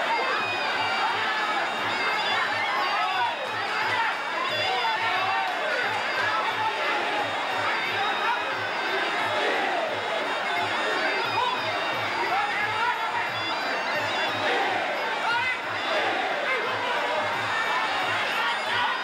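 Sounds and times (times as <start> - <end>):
crowd noise: 0.0 - 19.0.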